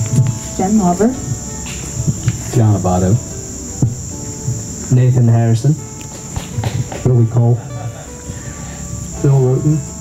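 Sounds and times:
insects chirping: 0.0 - 10.0
microphone handling knock: 6.1 - 7.2.

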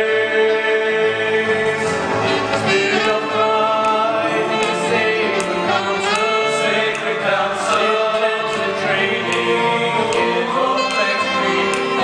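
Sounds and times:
men singing together: 0.0 - 12.0.

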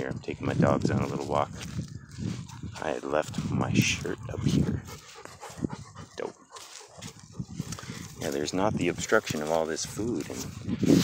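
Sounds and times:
dog panting: 2.4 - 11.0
person speaking word: 2.8 - 4.8.

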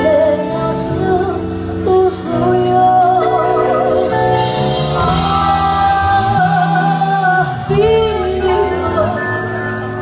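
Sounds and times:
woman singing with vibrato: 0.0 - 9.5
drums: 0.0 - 10.0
electric guitar: 0.0 - 10.0
keyboards: 0.0 - 10.0.

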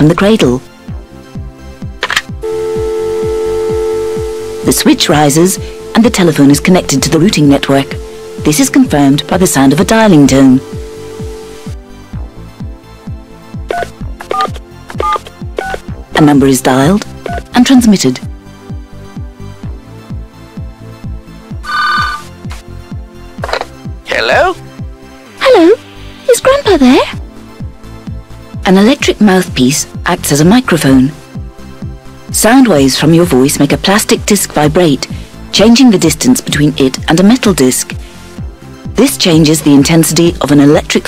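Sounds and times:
telephone dial tone: 2.4 - 11.8
background music with beat: 2.4 - 16.0.

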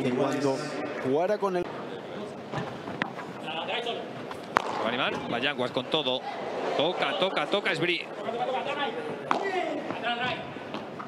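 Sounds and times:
racket striking ball: 4.3 - 5.2.

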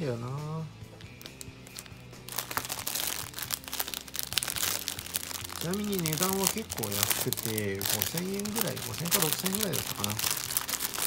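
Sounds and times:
faint background music: 0.0 - 11.0
plastic bag crinkling: 1.0 - 11.0.

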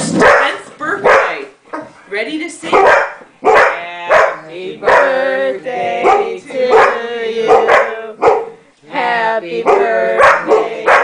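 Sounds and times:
dogs barking: 0.2 - 2.0, 2.7 - 5.3, 6.0 - 8.6, 9.6 - 11.0.

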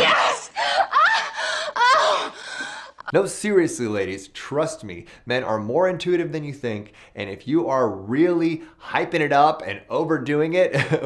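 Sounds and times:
woman moaning and gasping: 0.0 - 3.1.

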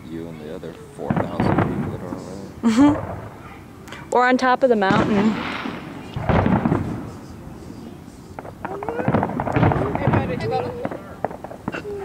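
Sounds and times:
distant fireworks bangs and crackling: 0.0 - 12.0.

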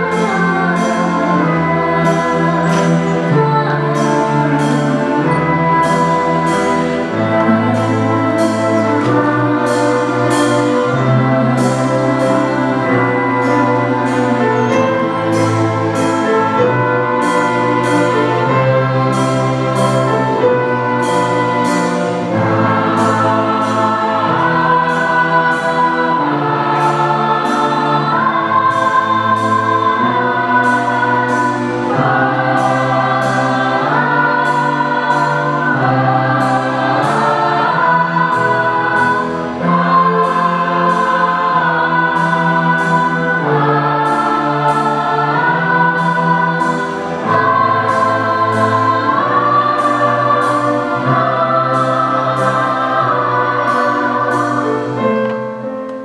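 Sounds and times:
choir singing: 0.0 - 56.0
string orchestra and piano: 0.0 - 56.0.

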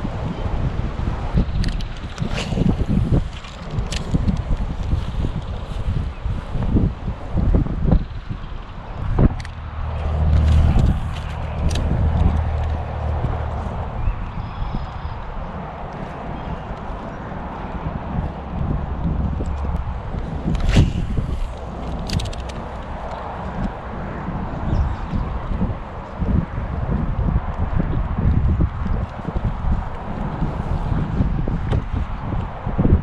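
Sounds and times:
wind buffeting microphone: 0.0 - 33.0
fishing reel clicks and knocks: 21.8 - 23.2.

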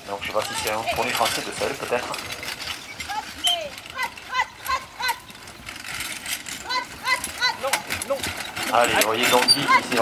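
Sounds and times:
high-pitched shouted commands: 3.1 - 5.3, 6.6 - 7.8.

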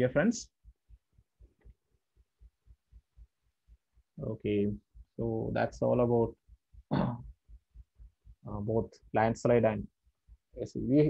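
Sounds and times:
faint low thumps pulsing: 2.4 - 11.0.

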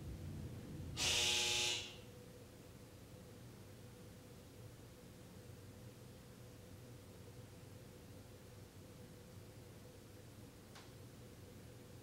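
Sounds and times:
short buzzing tone: 1.0 - 2.1.

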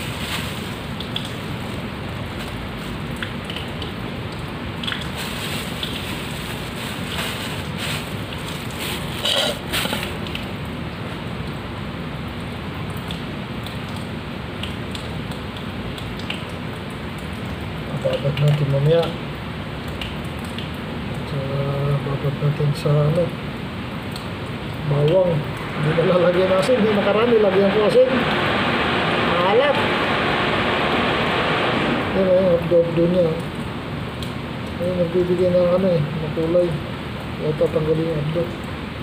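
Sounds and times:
tap water splashing into sink: 0.9 - 1.4, 2.4 - 5.2, 12.4 - 21.2.

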